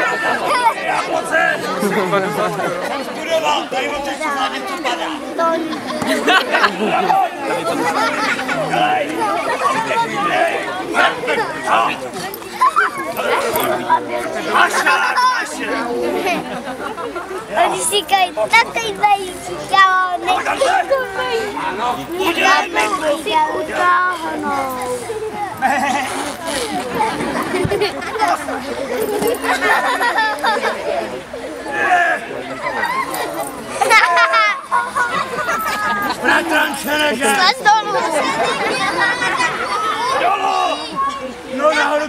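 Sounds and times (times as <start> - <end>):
indistinct chatter: 0.0 - 42.0.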